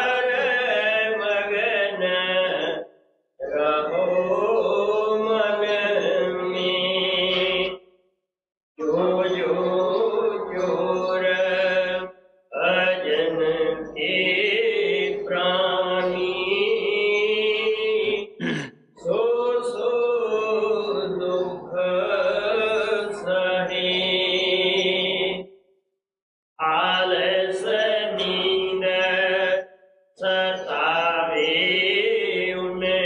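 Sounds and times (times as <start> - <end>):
person chanting a hymn: 0.0 - 2.8, 3.4 - 7.7, 8.8 - 25.4, 26.6 - 29.6, 30.2 - 33.0.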